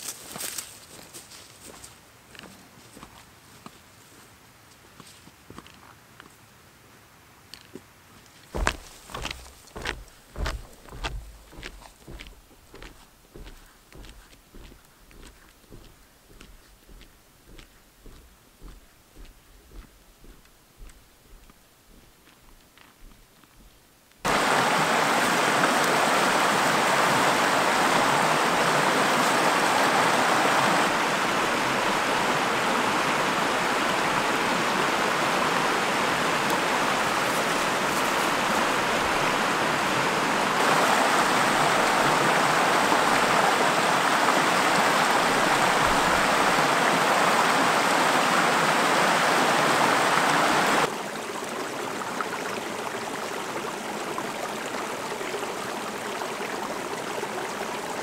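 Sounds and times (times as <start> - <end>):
river rushing over rocks: 24.3 - 58.0.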